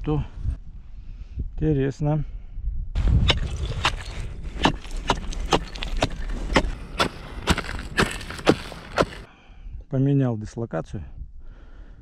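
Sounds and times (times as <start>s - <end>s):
steel chisel striking ice: 3.1s - 9.3s.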